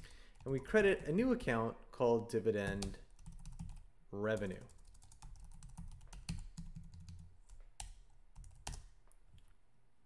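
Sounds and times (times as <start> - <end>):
computer keyboard typing: 2.6 - 9.0.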